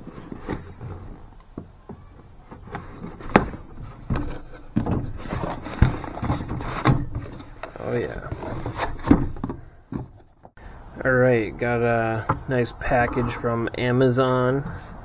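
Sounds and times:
cardboard scraping and rustling: 0.0 - 10.6.

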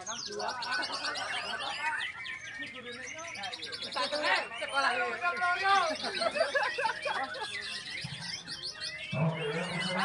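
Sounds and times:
birds singing high trills: 0.0 - 10.0
crowd voices: 0.0 - 10.0.

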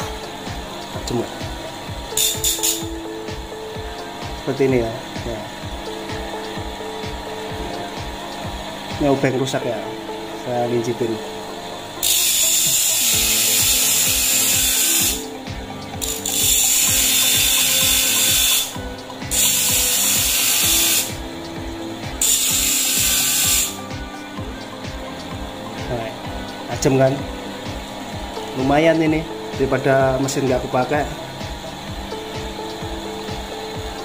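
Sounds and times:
metal grinding on abrasive disc: 2.1 - 2.9, 12.0 - 15.3, 16.0 - 21.2, 22.2 - 23.8.

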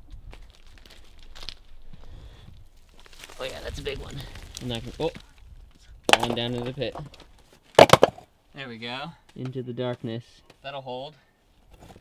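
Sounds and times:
twigs crackling underfoot: 0.0 - 7.9.

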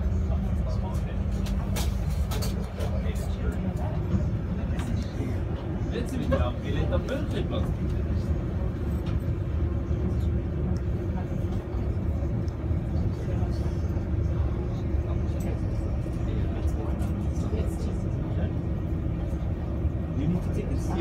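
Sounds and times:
boat engine drone: 0.0 - 21.0.

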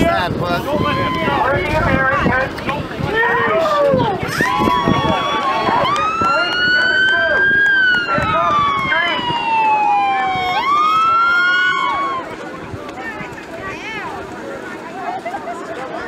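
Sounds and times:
people shouting: 3.1 - 12.4
police siren wailing: 4.4 - 12.4.

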